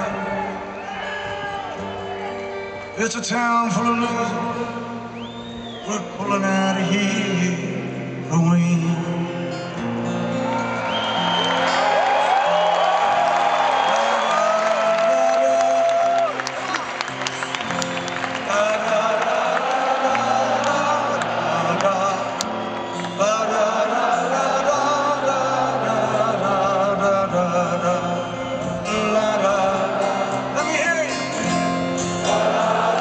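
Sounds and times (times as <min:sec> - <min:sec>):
stadium crowd whooping: 0:00.0 - 0:03.1, 0:03.7 - 0:07.5, 0:09.5 - 0:33.0
acoustic guitar strumming chords: 0:00.0 - 0:13.5, 0:16.4 - 0:33.0.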